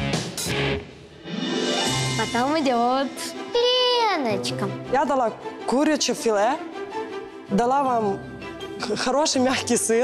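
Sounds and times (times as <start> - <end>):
guitar background music: 0.0 - 5.5.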